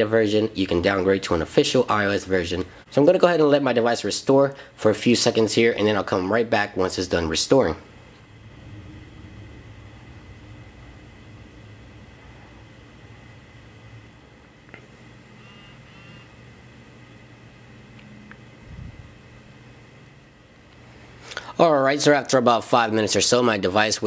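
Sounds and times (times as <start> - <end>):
low hum: 7.0 - 21.5
faint chirping: 15.2 - 16.5.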